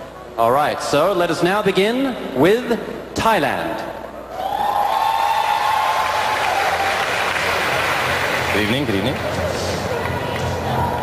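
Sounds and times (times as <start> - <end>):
crowd cheering: 4.3 - 11.0
audience applauding: 4.5 - 11.0.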